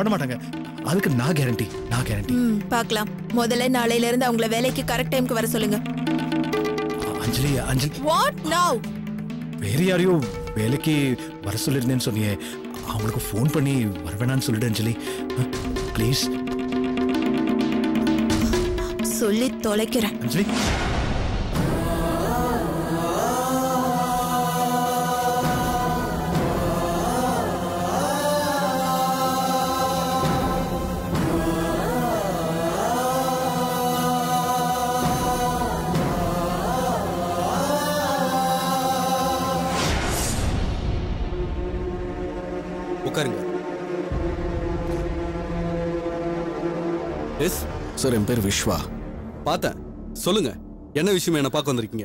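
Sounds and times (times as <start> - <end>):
sung vocal chant: 21.5 - 40.6.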